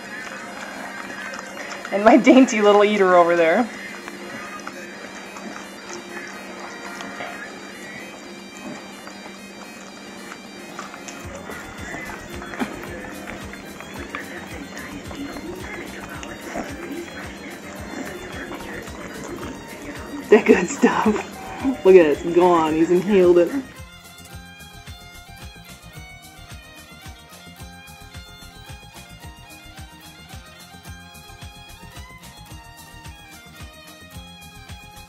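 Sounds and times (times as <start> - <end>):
lower accompaniment: 0.0 - 34.9
bagpipe music: 0.0 - 35.0.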